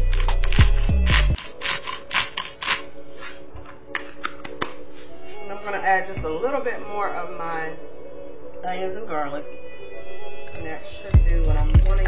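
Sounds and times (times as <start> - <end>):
music with heavy bass beat: 0.0 - 1.4
salt mill grinding: 0.0 - 3.4.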